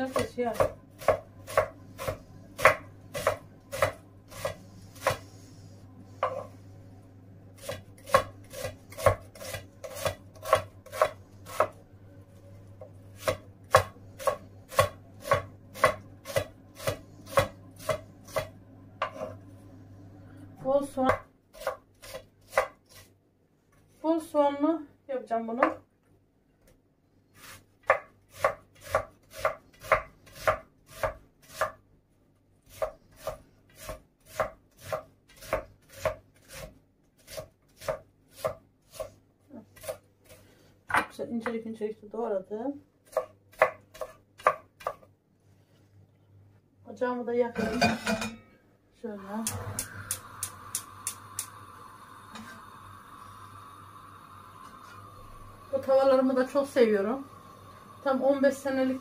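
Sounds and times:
knife chopping on wooden board: 0.0s - 5.2s, 7.6s - 11.8s, 13.2s - 19.3s, 21.1s - 23.0s, 27.8s - 31.8s, 32.7s - 39.1s, 43.1s - 45.1s.

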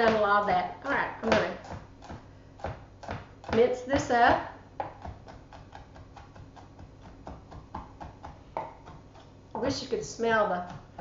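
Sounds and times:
knife chopping on wooden board: 1.2s - 9.3s.

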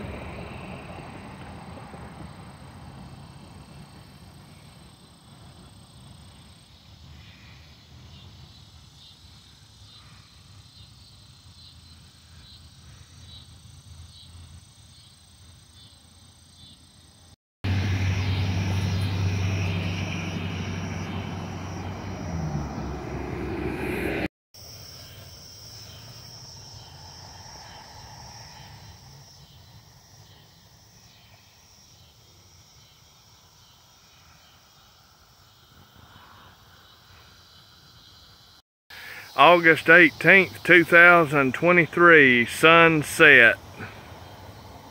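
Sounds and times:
engine drone with low hum: 0.0s - 6.5s, 17.6s - 31.7s, 39.1s - 44.9s
insects chirring: 0.1s - 23.6s, 24.6s - 44.9s.

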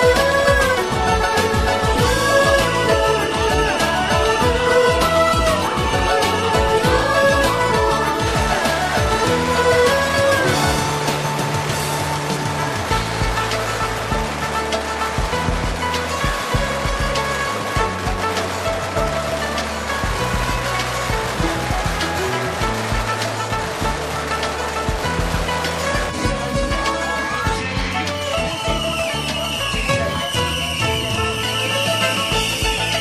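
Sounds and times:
firecrackers crackling: 0.0s - 33.0s
music with stepping bass line: 0.0s - 33.0s.

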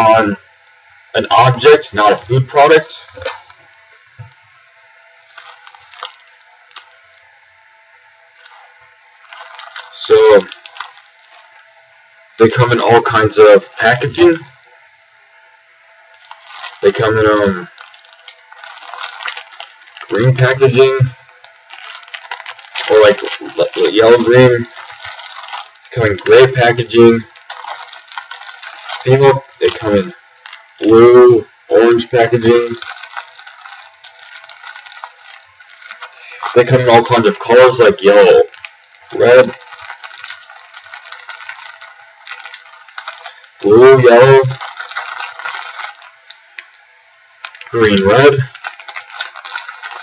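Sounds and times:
packets crinkling: 1.4s - 4.4s, 5.0s - 7.3s, 8.3s - 11.8s, 16.1s - 31.0s, 31.8s - 50.0s.

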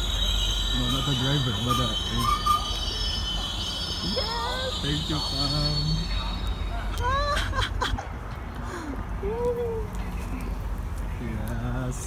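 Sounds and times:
high wheel squeal: 0.0s - 7.9s
train rolling past rumbling: 0.0s - 12.0s.

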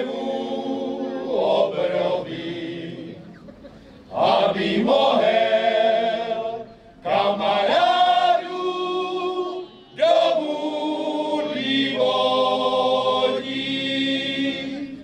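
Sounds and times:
men's choir singing harmony: 0.0s - 3.3s, 4.1s - 15.0s.

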